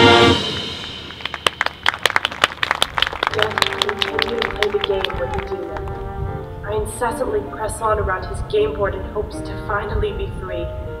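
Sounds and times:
scattered audience applause: 0:00.8 - 0:06.2.

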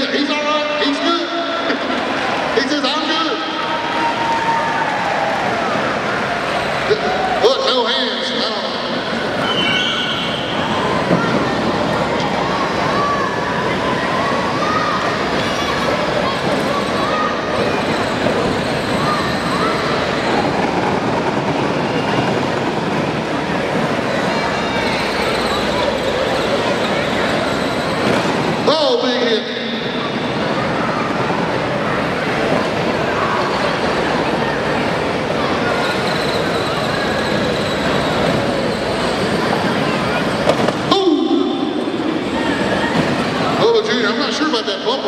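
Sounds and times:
crowd voices: 0:00.0 - 0:45.0.

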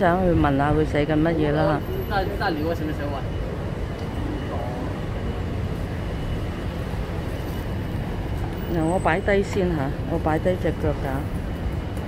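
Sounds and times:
faint voices: 0:00.0 - 0:05.4
low traffic rumble: 0:00.0 - 0:12.0.

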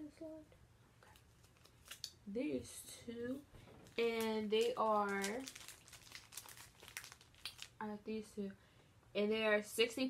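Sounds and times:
plastic sleeves crinkling: 0:01.0 - 0:02.2, 0:03.6 - 0:07.9.

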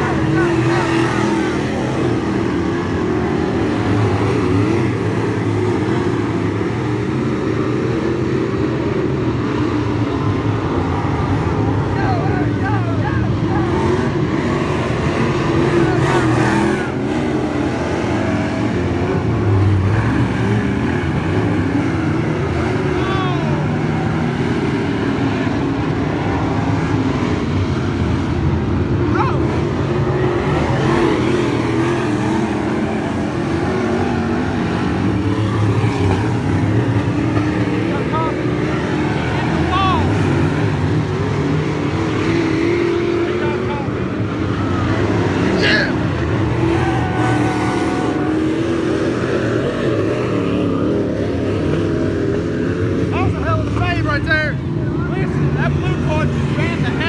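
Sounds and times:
race car engines droning: 0:00.0 - 0:57.0.

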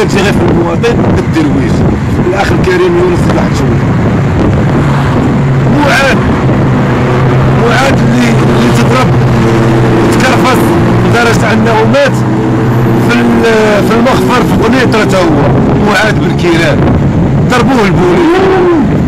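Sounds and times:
man speaking: 0:00.0 - 0:03.8, 0:05.7 - 0:06.3, 0:07.5 - 0:09.2, 0:10.0 - 0:12.3, 0:13.0 - 0:16.9, 0:17.5 - 0:18.8
low hum: 0:01.7 - 0:19.0.

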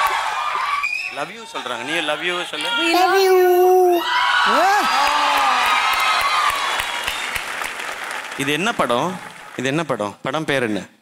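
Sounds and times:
audience cheering and applauding: 0:00.0 - 0:10.1
whoops: 0:03.5 - 0:07.2.

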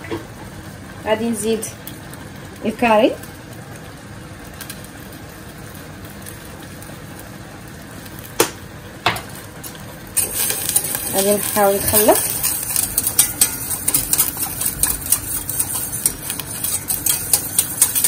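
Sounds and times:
gas burner hissing: 0:00.0 - 0:18.0
spoon stirring and scraping pan: 0:10.2 - 0:18.0.

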